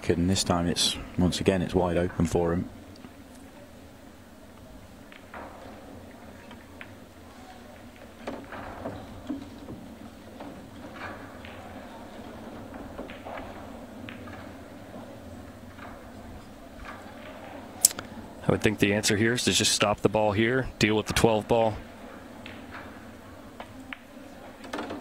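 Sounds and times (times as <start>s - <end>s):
low room noise: 0.0s - 25.0s
pool balls clicking: 4.5s - 19.2s, 19.8s - 25.0s.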